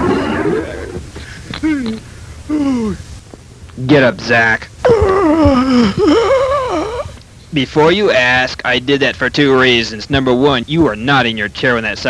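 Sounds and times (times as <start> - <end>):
man crying out in pain: 0.0 - 1.0, 1.6 - 3.0, 4.8 - 7.2.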